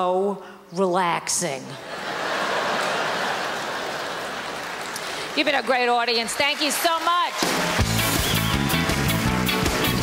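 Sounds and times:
large audience applauding: 2.4s - 10.0s.

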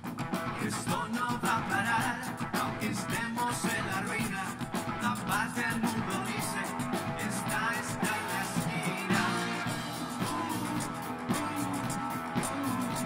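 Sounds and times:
electric guitar: 0.0s - 13.0s
live funk band playing: 0.0s - 13.0s
timbales and percussion: 1.2s - 13.0s.

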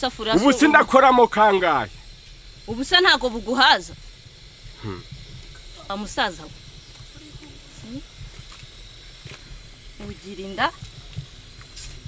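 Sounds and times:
person exclaiming: 0.3s - 1.8s.

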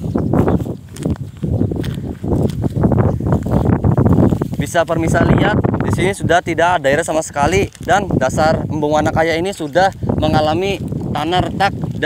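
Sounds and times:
footsteps on grass and dry mud: 0.0s - 12.0s.

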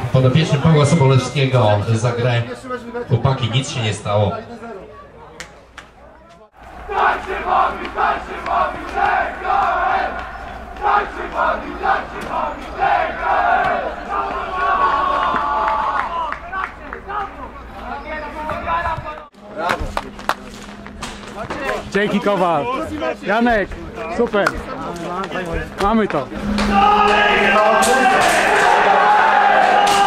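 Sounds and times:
outdoor noise: 0.0s - 30.0s
team chanting and shouting: 6.5s - 17.5s, 26.3s - 30.0s.

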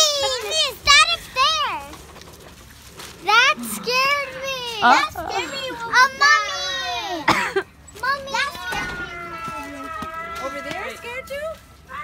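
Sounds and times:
children squealing and calling out: 3.2s - 7.3s, 7.9s - 12.0s.

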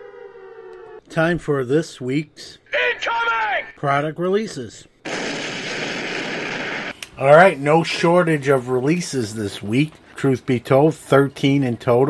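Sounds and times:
static-like noise rush: 5.1s - 7.4s.

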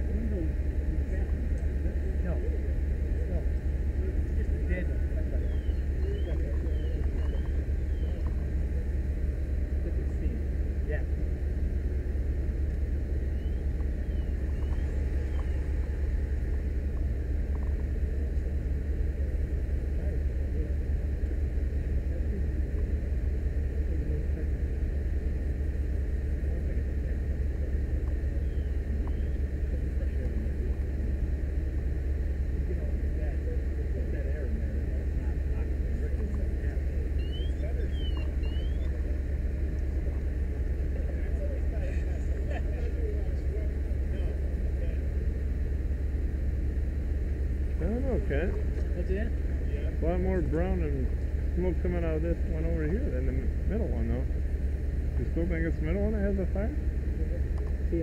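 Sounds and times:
faint indistinct voices: 0.0s - 58.0s
low engine rumble: 0.0s - 58.0s.

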